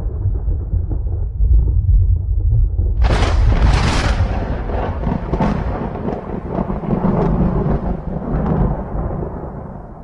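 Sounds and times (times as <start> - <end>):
deep rumbling bass: 0.0 - 7.8.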